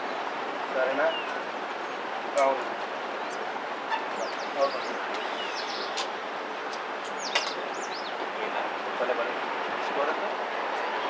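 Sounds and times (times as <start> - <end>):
birds chirping: 0.0 - 9.0
steady outdoor hiss: 0.0 - 11.0
faint distant voices: 2.4 - 6.2.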